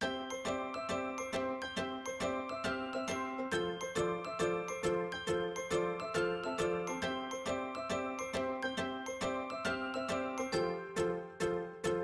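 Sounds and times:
bright struck-note melody: 0:00.0 - 0:12.0.

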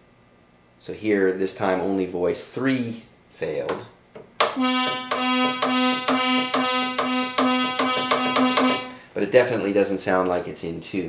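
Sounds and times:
synthesizer repeating buzzy note: 0:04.4 - 0:09.0.

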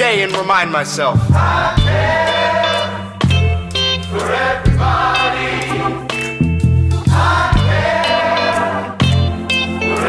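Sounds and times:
voices singing together: 0:01.2 - 0:03.4, 0:04.0 - 0:06.4, 0:07.0 - 0:10.0.

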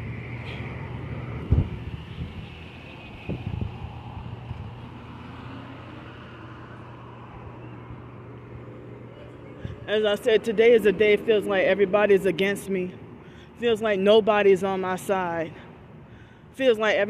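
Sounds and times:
cars driving through intersection: 0:00.0 - 0:17.0.

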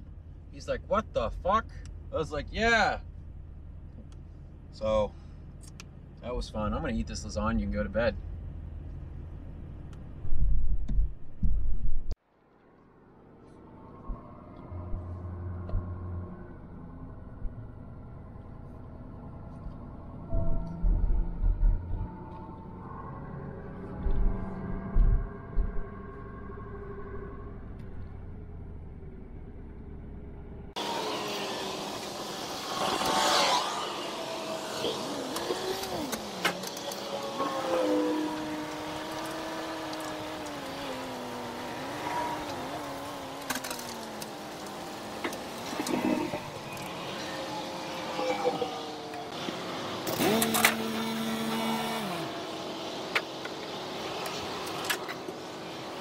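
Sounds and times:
low thumps: 0:10.0 - 0:12.1, 0:20.2 - 0:22.6, 0:23.8 - 0:27.0
engine pitch rising and falling: 0:13.3 - 0:56.0.

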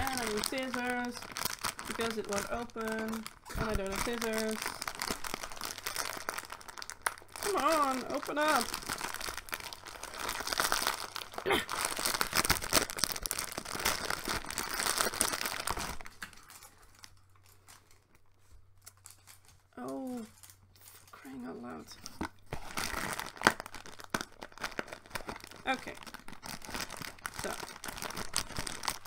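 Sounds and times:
plastic bag crinkling: 0:00.0 - 0:29.0.

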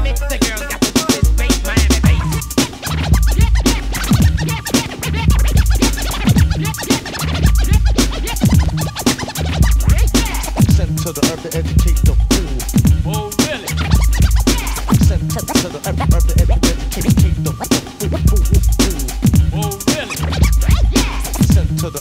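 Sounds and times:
deep bass notes: 0:00.0 - 0:22.0
hip hop drum machine beat: 0:00.0 - 0:22.0
turntable scratching: 0:00.0 - 0:22.0.

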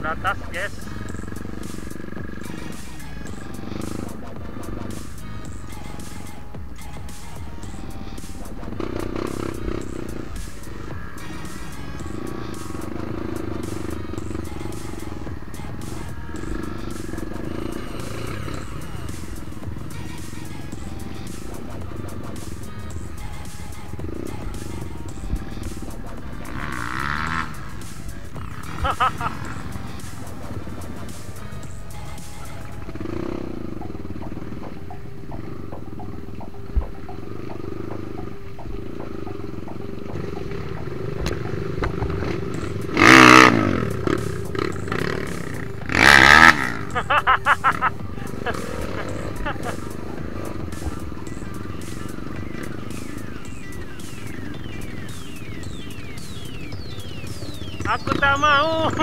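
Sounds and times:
loud engine bursts: 0:00.0 - 0:36.1, 0:38.8 - 0:59.0
background music: 0:00.0 - 0:59.0
motorcycle engines running: 0:00.0 - 0:59.0.

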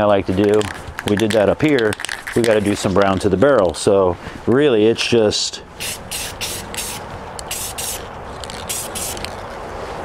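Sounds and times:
spray can hissing bursts: 0:05.8 - 0:09.3.

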